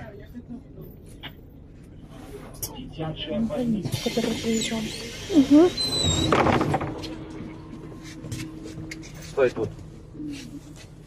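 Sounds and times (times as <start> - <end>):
bus engine running: 0.0 - 11.0
steady hum: 6.4 - 11.0.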